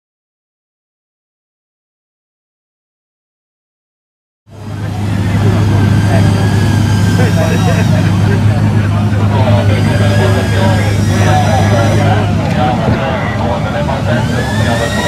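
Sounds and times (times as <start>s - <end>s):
people talking: 4.5s - 15.0s
race car engine idling: 4.5s - 15.0s.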